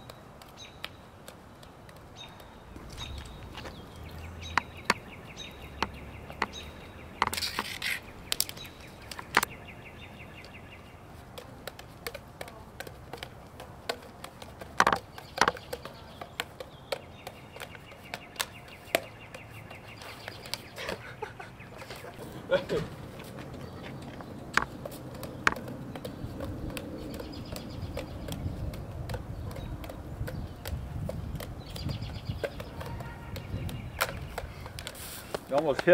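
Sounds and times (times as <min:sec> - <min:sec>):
juggling clubs clacking: 0:00.0 - 0:09.5, 0:10.4 - 0:21.0, 0:21.8 - 0:35.9.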